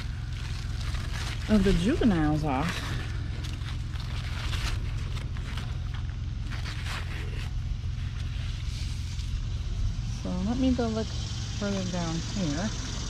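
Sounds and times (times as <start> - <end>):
leaves rustling and crackling: 0.0 - 13.0
low rumble: 0.0 - 13.0.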